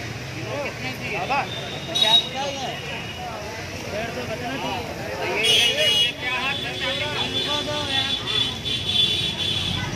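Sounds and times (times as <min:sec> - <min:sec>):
street traffic: 0:00.0 - 0:09.9
people talking: 0:00.3 - 0:09.9.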